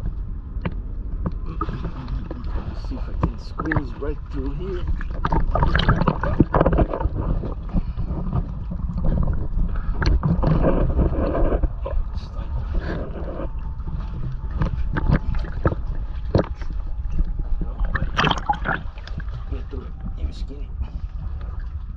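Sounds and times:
water sloshing and splashing: 0.0s - 21.9s.

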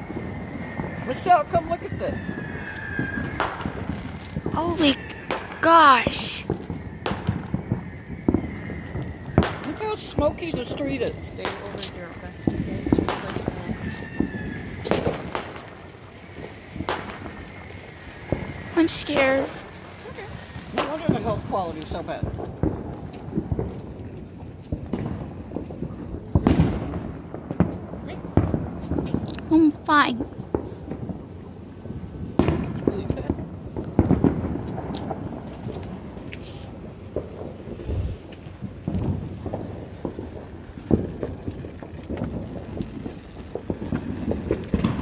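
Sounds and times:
fireworks banging: 0.0s - 45.0s.

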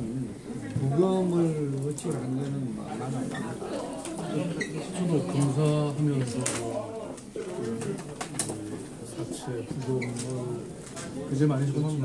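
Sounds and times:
man talking in low voice: 0.0s - 3.4s, 5.0s - 12.0s.

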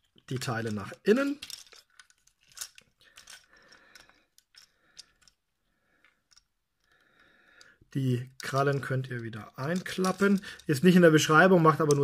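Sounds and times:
plastic toy parts clicking and rubbing: 0.0s - 12.0s.

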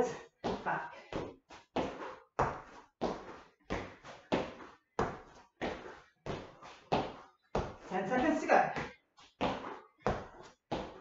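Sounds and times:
feet thudding on floor: 0.0s - 11.0s.

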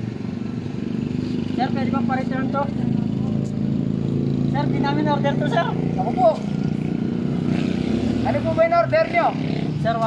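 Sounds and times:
man talking: 1.6s - 3.5s, 4.5s - 6.5s.

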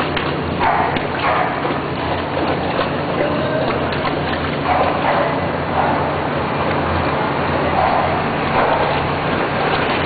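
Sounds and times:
dog splashing water: 0.0s - 10.0s
steady background noise: 0.0s - 10.0s.

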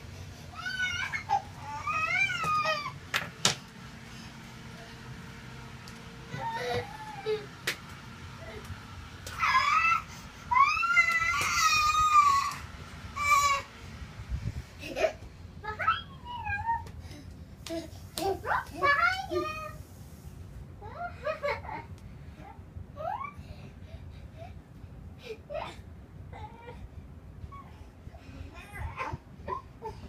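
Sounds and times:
young child whining cry: 0.5s - 3.0s, 6.3s - 7.5s, 9.4s - 12.6s, 13.2s - 13.7s, 15.7s - 16.9s, 23.0s - 23.4s.

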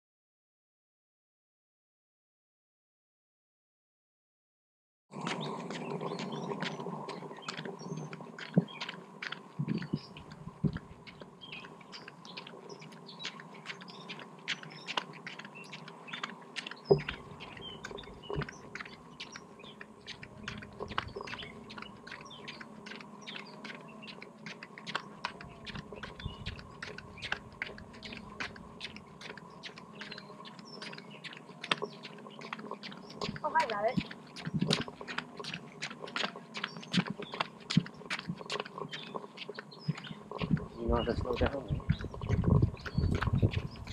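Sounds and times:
small birds chirping: 5.1s - 43.9s
faint steady hum: 5.2s - 43.9s
sharp clicks and crackles: 5.2s - 43.9s.

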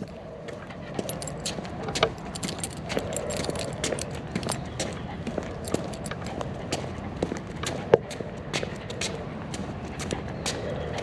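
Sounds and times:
dog collar jingling: 0.9s - 6.6s.

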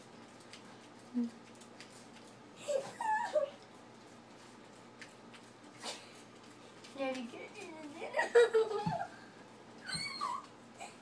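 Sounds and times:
dog yipping and whining: 9.8s - 10.6s.

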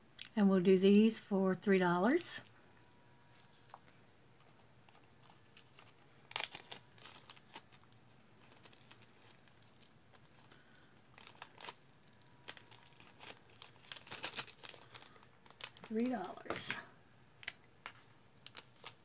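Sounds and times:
plastic bag crinkling: 3.2s - 16.8s, 18.4s - 19.0s.

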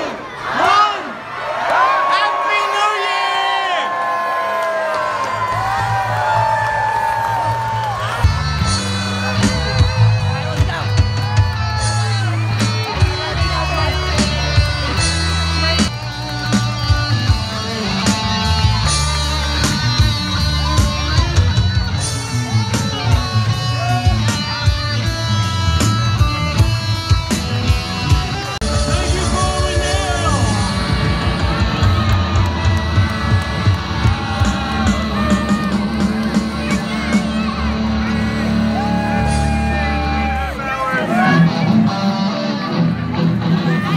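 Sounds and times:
crowd yelling and whooping: 0.0s - 43.9s
electric guitars: 4.9s - 43.9s
rock band playing: 5.3s - 43.9s
low bass line: 8.1s - 40.6s.

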